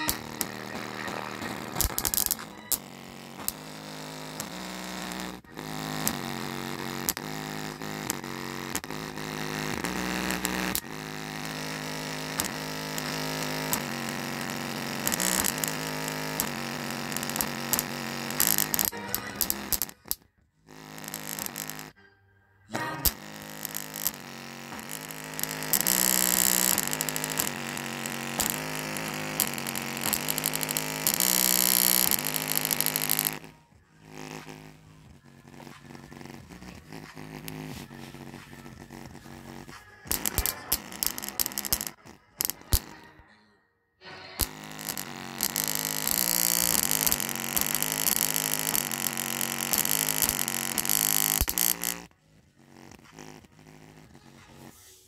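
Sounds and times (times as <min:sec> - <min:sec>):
bass-heavy music from small speaker: 0:00.0 - 0:43.2, 0:44.1 - 0:55.0.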